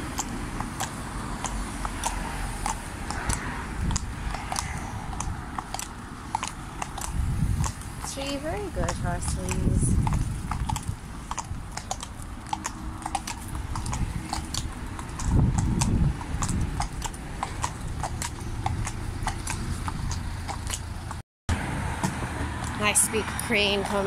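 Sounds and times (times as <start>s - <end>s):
horse hooves on concrete: 0.0s - 21.2s, 21.8s - 24.0s
road traffic noise: 0.0s - 24.0s
vehicle passing loudly: 0.0s - 24.0s.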